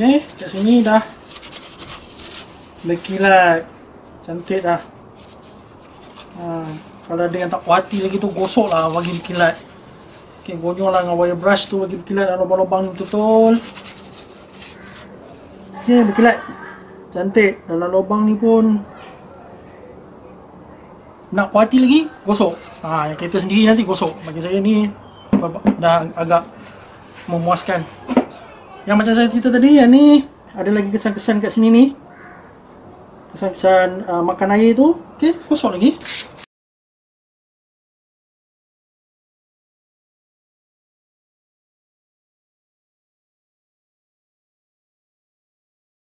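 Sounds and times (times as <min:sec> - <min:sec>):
tissue rubbing metal casing: 0:00.0 - 0:03.7, 0:04.5 - 0:15.6, 0:22.3 - 0:24.6, 0:26.2 - 0:28.0, 0:35.3 - 0:36.5.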